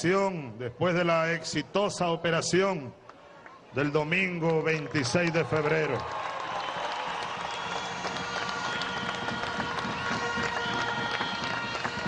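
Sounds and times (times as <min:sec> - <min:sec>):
large crowd applauding: 0:04.5 - 0:12.0.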